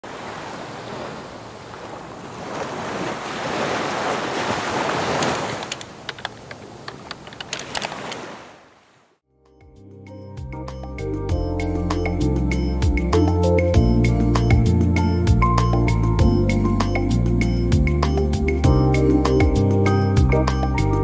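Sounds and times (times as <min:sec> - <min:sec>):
ocean surf: 0:00.0 - 0:09.1
music: 0:09.3 - 0:21.0.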